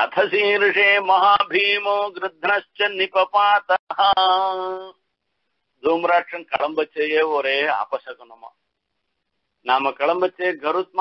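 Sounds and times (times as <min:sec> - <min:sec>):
man chanting: 0:00.0 - 0:05.0, 0:05.8 - 0:08.5, 0:09.6 - 0:11.0.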